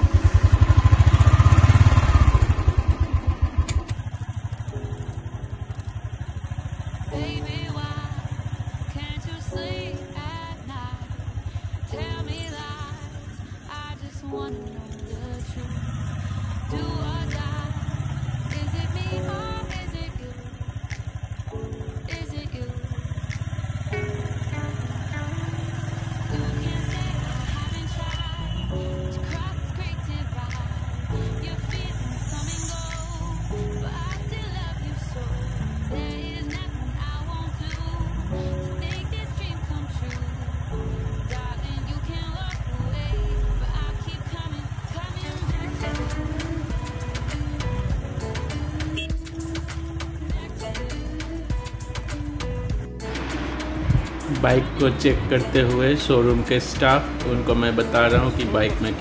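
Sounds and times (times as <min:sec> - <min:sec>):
motorcycle engine thumping: 0:00.0 - 0:06.9, 0:45.5 - 0:47.2, 0:47.9 - 0:50.6, 0:51.5 - 0:55.5, 0:56.3 - 0:59.0
background music with melody: 0:00.0 - 0:59.0.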